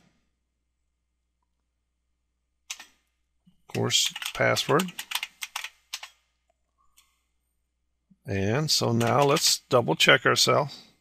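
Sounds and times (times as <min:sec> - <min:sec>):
computer keyboard typing: 0:02.7 - 0:03.0, 0:03.7 - 0:06.2, 0:08.9 - 0:09.5.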